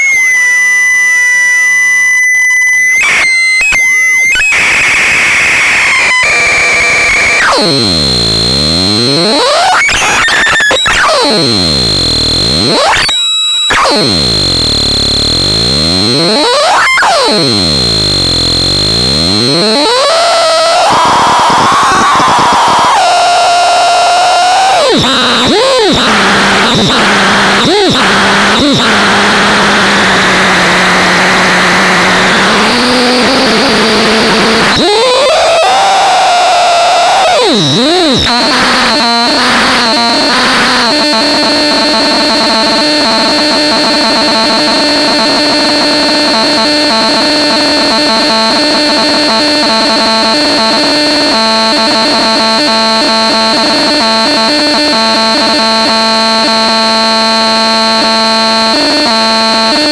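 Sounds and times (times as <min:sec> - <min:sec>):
harsh sweeping electronic noise: 0:00.0 - 0:59.9
high electronic whine: 0:00.0 - 0:59.9.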